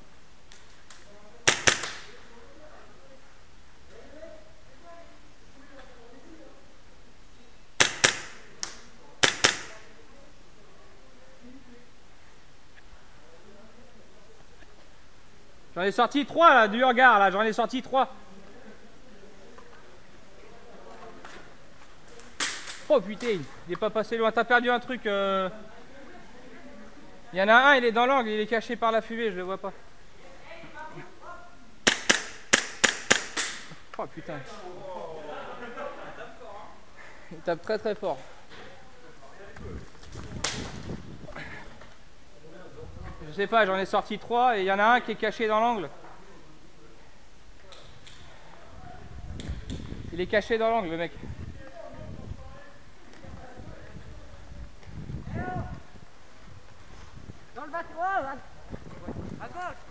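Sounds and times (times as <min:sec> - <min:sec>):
airsoft pistol shots cracking: 0:01.5 - 0:02.1, 0:07.8 - 0:09.8, 0:22.4 - 0:22.9, 0:31.8 - 0:33.7.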